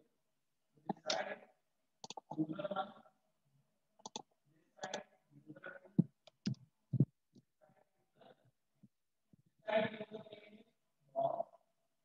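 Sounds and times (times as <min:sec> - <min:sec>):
computer mouse clicks: 0:02.0 - 0:02.4, 0:04.0 - 0:05.0.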